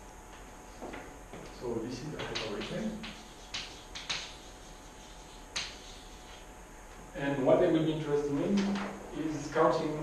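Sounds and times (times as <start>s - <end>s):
chalk scraping on blackboard: 2.3s - 6.5s.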